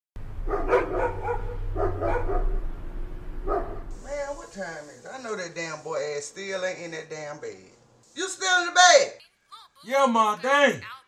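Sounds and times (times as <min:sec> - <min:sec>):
dog barking: 0:00.5 - 0:02.6, 0:03.4 - 0:03.9.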